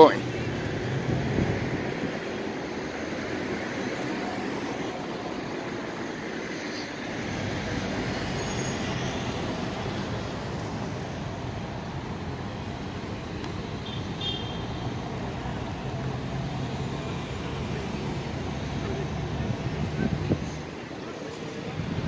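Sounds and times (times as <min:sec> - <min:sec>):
city traffic hum: 0:00.0 - 0:22.0.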